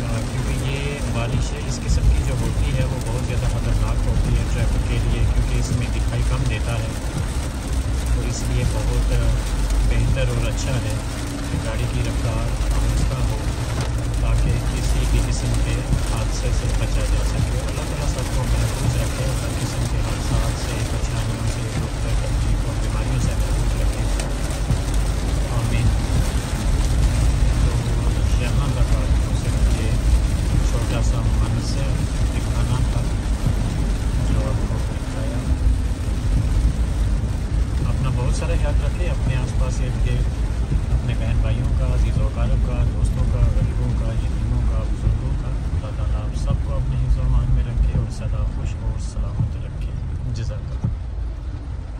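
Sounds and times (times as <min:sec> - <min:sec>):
rain on car roof: 0:00.0 - 0:51.9
tyres hissing on wet road: 0:00.0 - 0:51.9.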